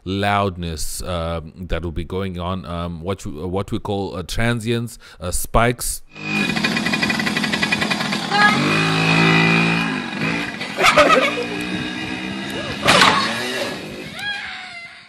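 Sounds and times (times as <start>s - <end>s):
dirt bike engine buzzing: 6.1s - 14.3s
bike crashing into wall: 12.2s - 14.0s.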